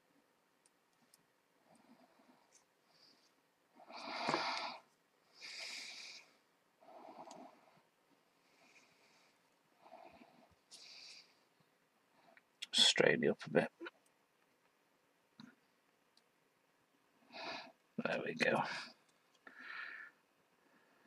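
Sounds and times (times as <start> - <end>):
person breathing in and out: 1.6 - 11.6, 18.6 - 21.0.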